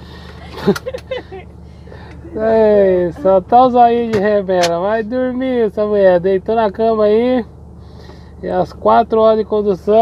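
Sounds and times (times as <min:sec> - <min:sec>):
road noise: 0:00.0 - 0:10.0
truck engine drone: 0:00.0 - 0:10.0.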